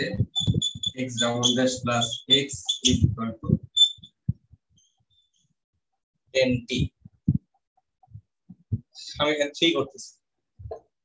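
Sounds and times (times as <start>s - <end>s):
marker squeaking on whiteboard: 0.0s - 5.5s.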